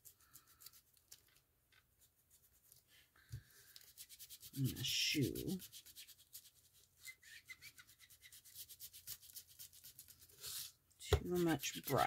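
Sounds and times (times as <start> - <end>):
ink blending tool scrubbing paper: 8.0 - 12.0.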